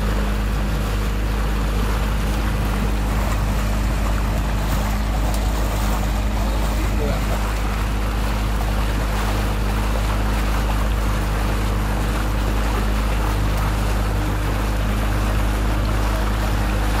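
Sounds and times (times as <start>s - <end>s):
boat motor humming: 0.0s - 17.0s
water rushing along hull: 0.0s - 17.0s.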